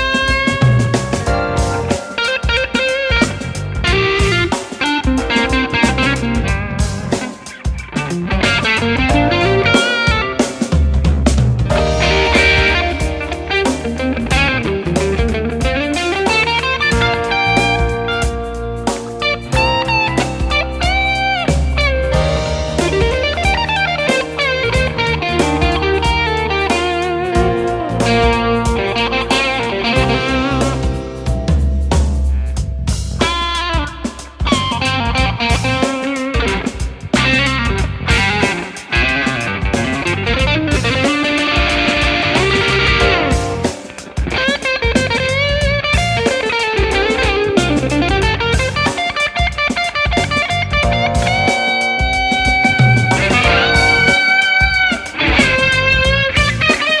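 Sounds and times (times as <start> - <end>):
bass line: 0.0 - 2.0, 3.1 - 35.8, 36.5 - 43.8, 45.0 - 46.3, 47.0 - 49.0, 50.1 - 56.7
electric guitar blues-rock lead: 0.0 - 57.0.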